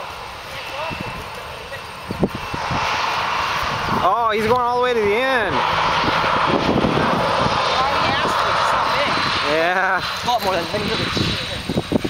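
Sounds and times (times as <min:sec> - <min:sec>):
distant jet engines rushing: 0:00.0 - 0:12.0.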